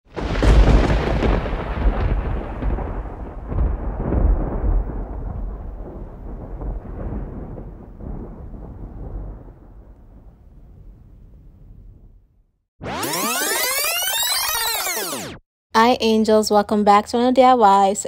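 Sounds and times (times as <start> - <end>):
deep thunder-like rumble: 0.1 - 12.4.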